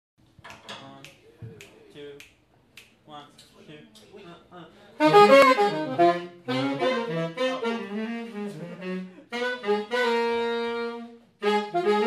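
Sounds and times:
finger snaps: 0.5 - 3.0.

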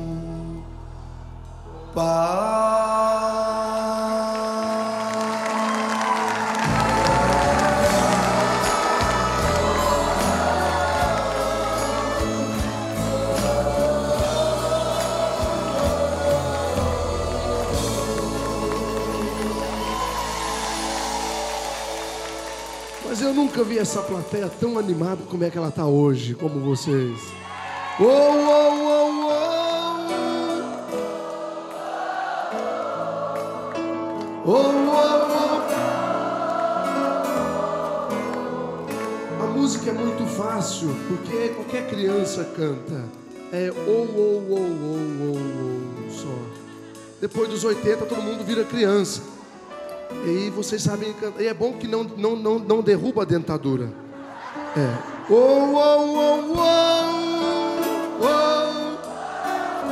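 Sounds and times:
acoustic guitar: 0.0 - 25.1, 53.8 - 59.9
band music: 0.0 - 51.8
crowd singing along: 1.6 - 22.6, 28.4 - 39.6, 54.1 - 59.9
band playing: 3.8 - 25.5
audience clapping in time: 4.3 - 12.8, 14.2 - 25.4.

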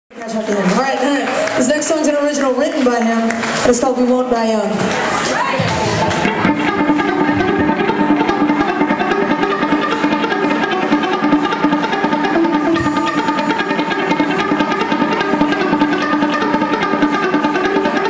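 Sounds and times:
drums: 4.4 - 18.0
electric guitars: 4.8 - 18.0
bass guitar: 5.6 - 18.0.

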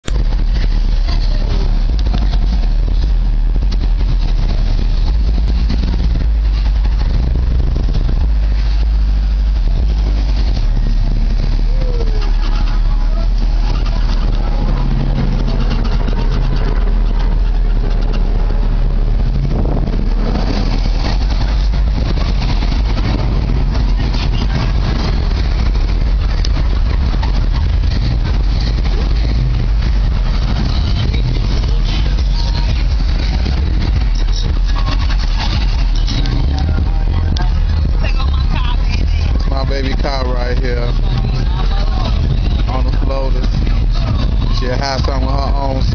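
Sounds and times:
cars driving past and idling: 0.0 - 45.9
people talking in background: 7.9 - 18.7, 20.6 - 45.9.

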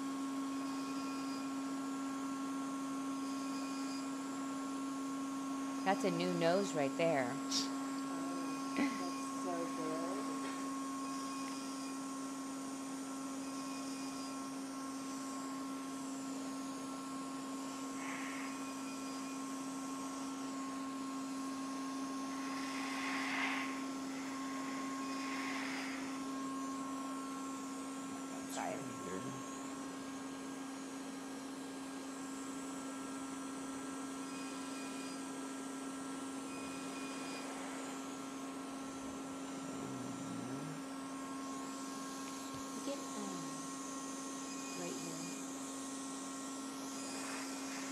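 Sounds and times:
steady electrical hum: 0.0 - 47.9.

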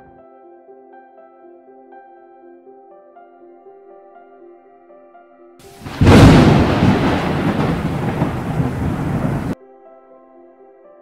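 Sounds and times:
thunder clap: 5.8 - 9.6
thunder rumbling: 5.8 - 9.6.

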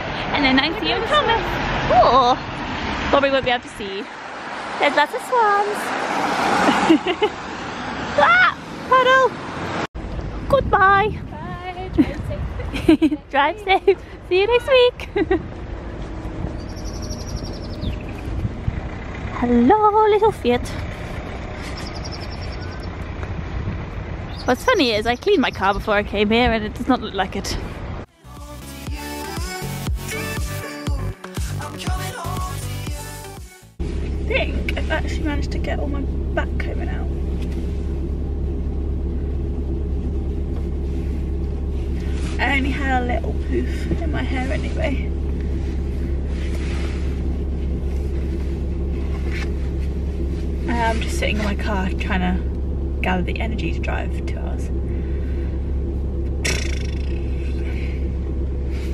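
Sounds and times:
car engine idling: 10.0 - 28.1, 33.8 - 58.9
outdoor rumble and hiss: 33.8 - 58.9
soft rustle: 39.8 - 42.8, 44.0 - 51.6.

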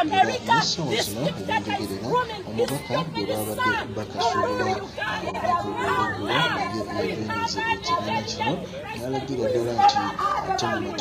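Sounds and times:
people talking and shouting: 0.0 - 11.0.

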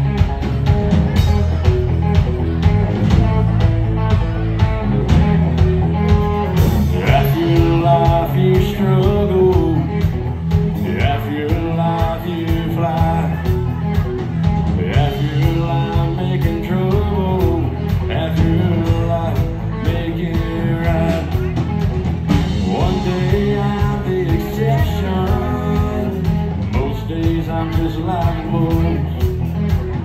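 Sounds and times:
live country-rock band: 0.0 - 30.0
lead vocal singing: 6.8 - 13.6, 14.7 - 21.6, 22.3 - 29.2.

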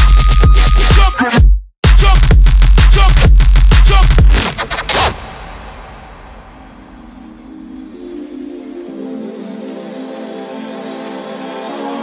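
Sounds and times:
faint high flickering tone: 5.2 - 10.5
sustained synth chords: 5.4 - 12.0.

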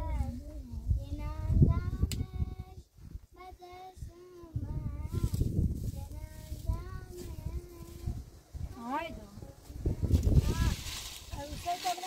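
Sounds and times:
girl singing wordless tune: 0.0 - 8.4.

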